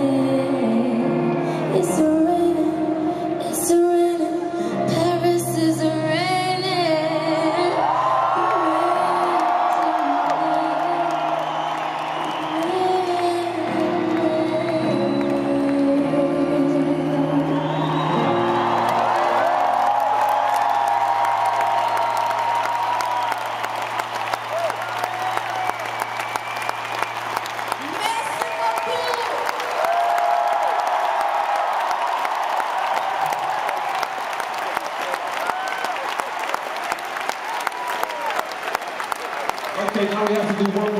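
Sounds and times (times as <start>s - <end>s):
woman singing: 0.0s - 11.5s, 12.2s - 18.0s
piano and band chords: 0.0s - 35.5s
stadium crowd cheering and clapping: 5.6s - 40.9s.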